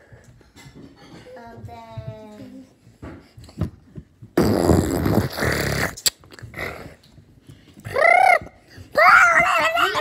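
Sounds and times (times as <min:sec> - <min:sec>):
child blowing into microphone: 0:04.4 - 0:06.1.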